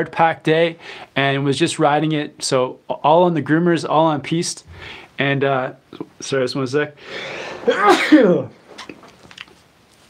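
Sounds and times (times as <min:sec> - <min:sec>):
man sneezing: 0:07.2 - 0:08.9.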